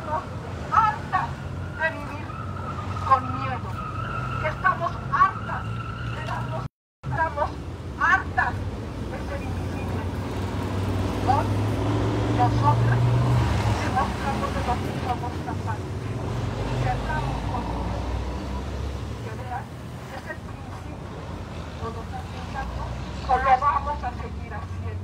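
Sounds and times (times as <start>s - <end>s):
woman speaking through megaphone: 0.0s - 10.2s, 11.2s - 25.0s.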